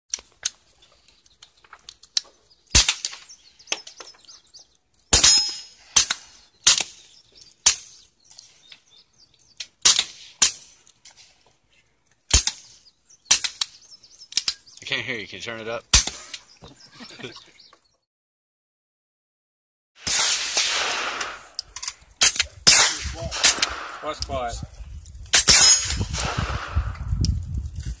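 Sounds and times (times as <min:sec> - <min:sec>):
suppressed gunshots: 0:20.0 - 0:21.6, 0:22.2 - 0:24.2, 0:25.4 - 0:27.1.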